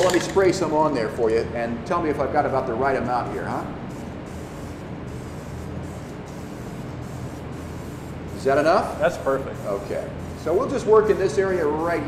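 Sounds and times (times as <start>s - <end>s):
aerosol spray can hissing: 3.9s - 12.0s.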